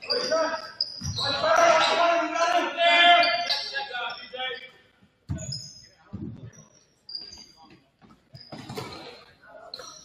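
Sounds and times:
sneakers squeaking on hardwood: 0.0s - 4.3s, 5.2s - 10.0s
players calling: 0.0s - 4.7s.

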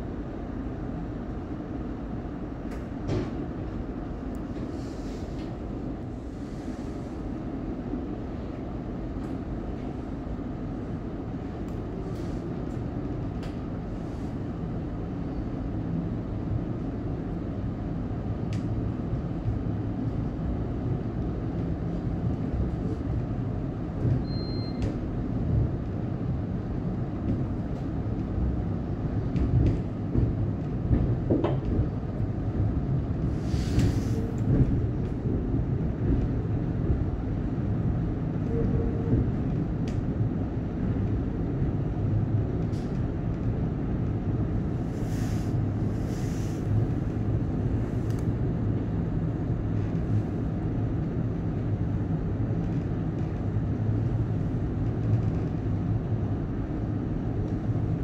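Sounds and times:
train cabin low rumble: 0.0s - 58.0s
short hisses: 45.0s - 46.7s.

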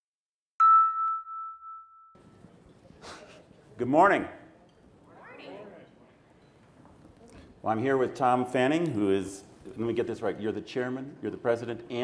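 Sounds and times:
chime note ringing: 0.6s - 2.3s.

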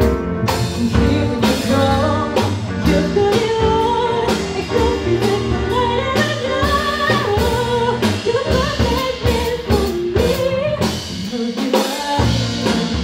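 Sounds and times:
keyboard chords: 0.0s - 10.1s
bass guitar: 0.0s - 13.0s
drum kit: 0.0s - 13.0s
woman singing into a microphone: 0.6s - 13.0s.

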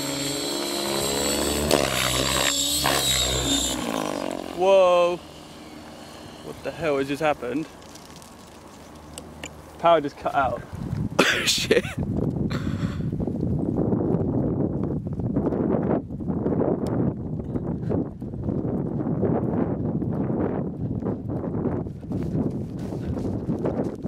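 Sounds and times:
wind on microphone: 0.0s - 24.0s
footsteps through long grass: 5.8s - 9.8s, 21.8s - 24.0s
camera handling rumble: 7.4s - 9.8s.

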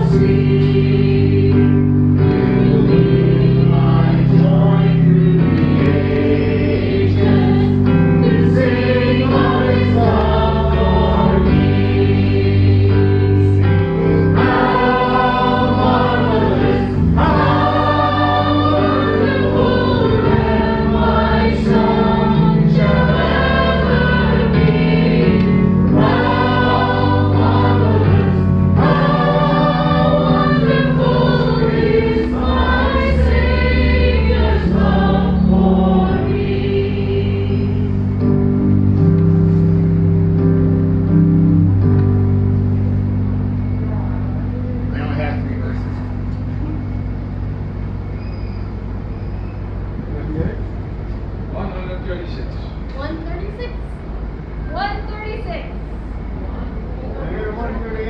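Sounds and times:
group singing worship song: 0.0s - 39.8s
keyboard sustained chords: 0.0s - 58.0s.

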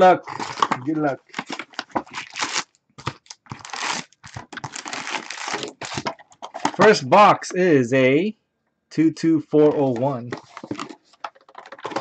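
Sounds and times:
plastic wrapping tearing and crumpling: 0.2s - 6.8s, 10.4s - 12.0s.

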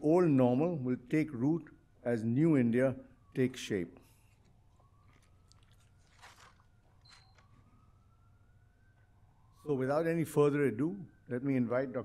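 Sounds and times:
soft rustle: 4.1s - 8.0s.

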